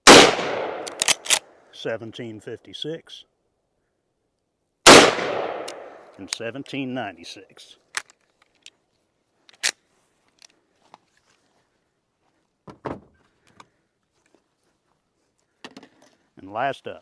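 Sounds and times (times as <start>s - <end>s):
handling clicks: 0.8s - 1.4s, 5.3s - 6.8s.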